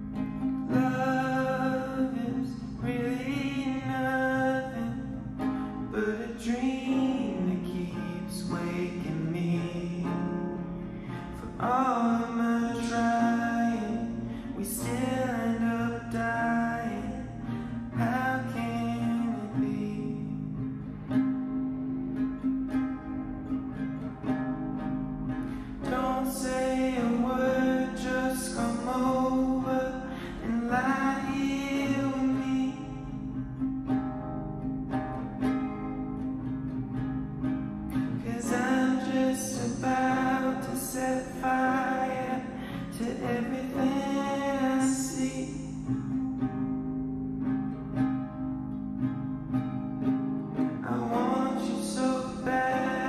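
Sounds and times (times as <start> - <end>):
classical guitar: 0.0 - 53.0
man singing: 0.4 - 20.8, 25.5 - 33.6, 38.1 - 46.4, 50.8 - 53.0.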